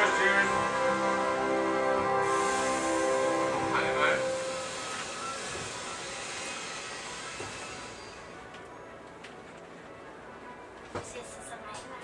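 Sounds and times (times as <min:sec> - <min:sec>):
ride train rushing and rumbling: 0:00.0 - 0:09.9.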